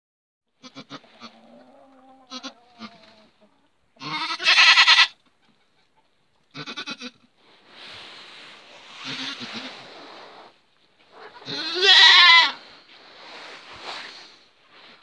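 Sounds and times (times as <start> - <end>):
goat bleating: 0.6 - 3.1, 4.0 - 5.2, 6.5 - 7.2, 9.0 - 9.7, 11.4 - 12.6.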